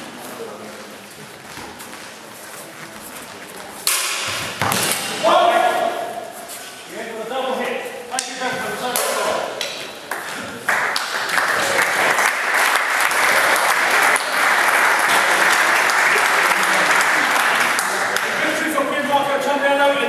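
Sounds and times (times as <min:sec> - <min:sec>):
audience applauding: 0:10.1 - 0:18.6.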